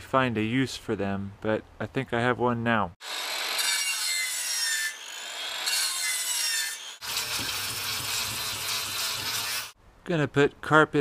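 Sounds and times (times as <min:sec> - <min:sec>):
circular saw cutting plywood: 0:03.0 - 0:09.8
angle grinder sanding wood: 0:04.3 - 0:09.8.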